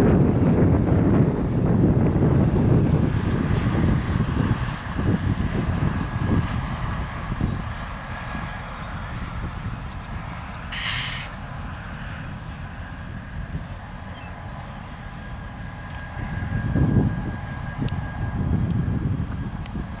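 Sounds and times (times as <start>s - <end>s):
freight train cars rumbling: 0.0s - 20.0s
brief hiss: 10.7s - 11.4s.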